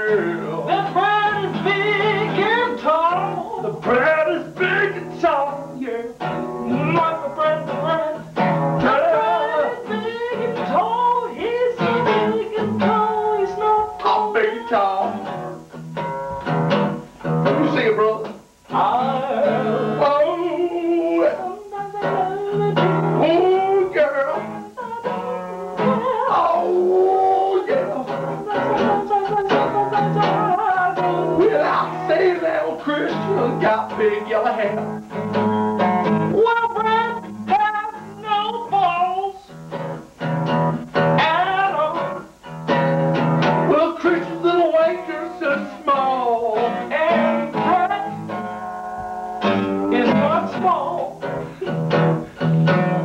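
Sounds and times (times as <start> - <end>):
men singing: 0.0 - 15.4, 17.6 - 34.9, 43.7 - 48.4, 49.4 - 51.7
strummed acoustic guitar: 0.0 - 53.0.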